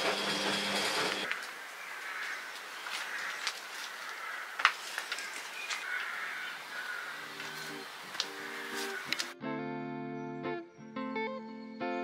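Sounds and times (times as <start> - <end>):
outdoor ambience: 0.0 - 9.4.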